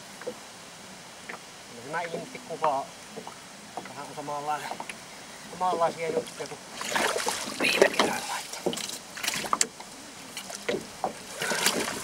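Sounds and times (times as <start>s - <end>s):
water splashing: 5.5s - 12.0s.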